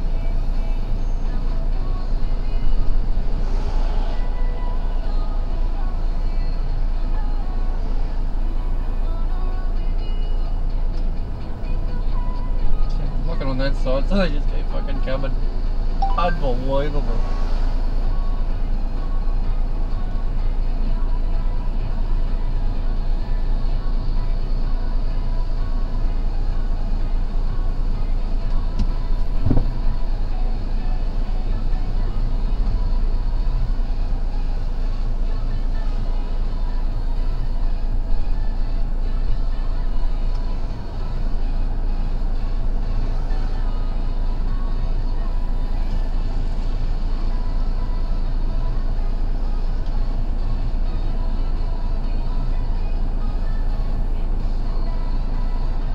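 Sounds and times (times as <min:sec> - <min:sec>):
vehicle engine idling: 0:00.0 - 0:55.9
short rising sound: 0:03.0 - 0:04.6.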